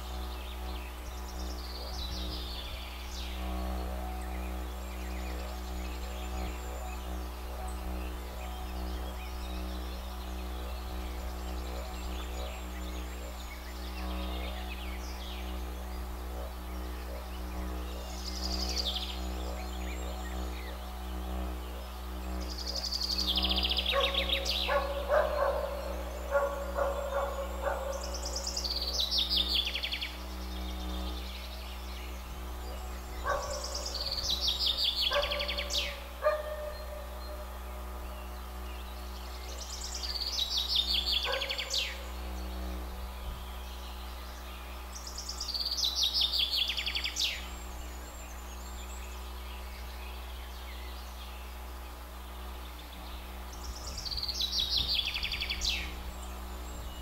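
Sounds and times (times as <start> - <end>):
didgeridoo drone: 0.0 - 57.0
songbird trilling: 0.0 - 57.0.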